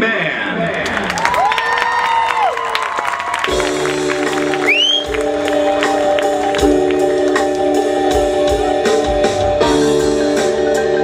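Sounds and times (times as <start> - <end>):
stadium crowd cheering: 0.6 - 7.0
marching band chord: 3.5 - 11.0
short high whistle: 4.6 - 5.2.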